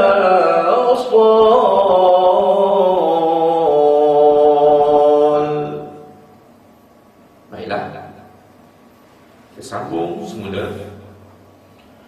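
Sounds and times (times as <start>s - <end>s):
man chanting: 0.0s - 6.2s.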